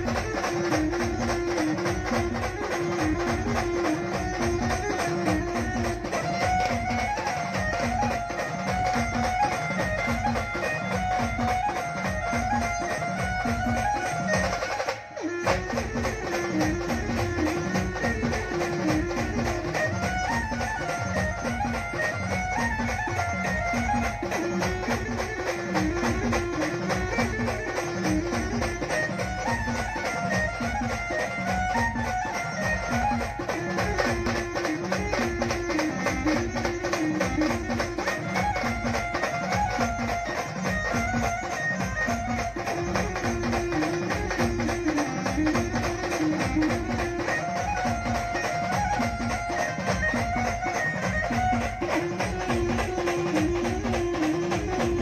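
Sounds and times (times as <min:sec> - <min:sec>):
brass and drum band playing: 0:00.0 - 0:55.0.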